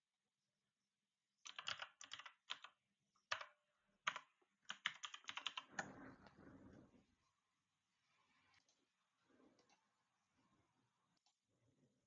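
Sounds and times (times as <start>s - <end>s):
computer keyboard typing: 1.4s - 6.0s.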